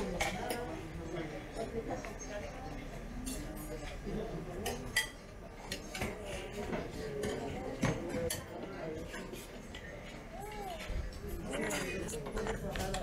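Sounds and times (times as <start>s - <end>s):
dishes and cutlery clinking: 3.2s - 13.0s.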